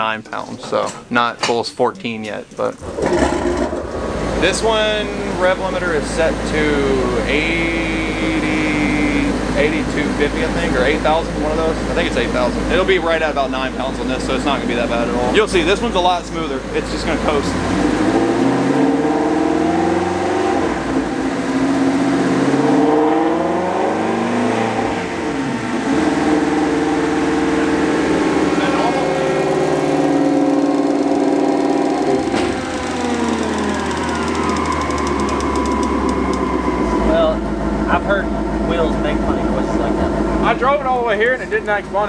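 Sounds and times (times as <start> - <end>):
engine revving on a dyno: 2.8 - 41.1.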